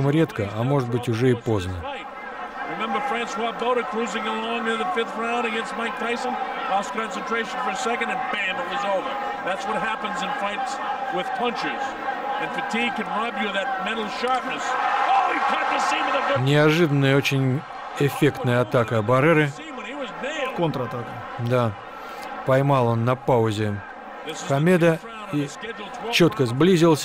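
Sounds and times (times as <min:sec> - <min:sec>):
men commentating: 0:00.0 - 0:27.0
murmuring arena crowd: 0:00.0 - 0:27.0.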